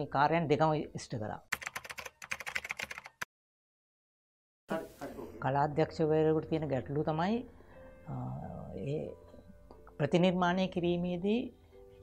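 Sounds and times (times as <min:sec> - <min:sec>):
keyboard typing clicks: 0:01.6 - 0:03.3.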